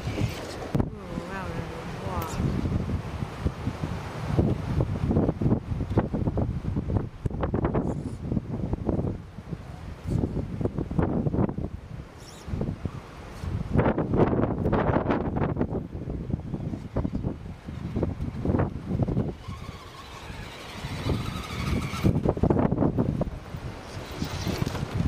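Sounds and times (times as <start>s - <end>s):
wind buffeting microphone: 0.0s - 25.0s
faint electric motor whine: 16.6s - 22.8s.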